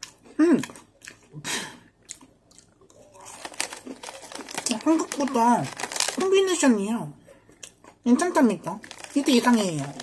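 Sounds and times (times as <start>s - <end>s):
crunchy cookie chewing: 2.0s - 6.5s
foil wrapper crinkling: 3.2s - 6.8s, 8.6s - 10.0s.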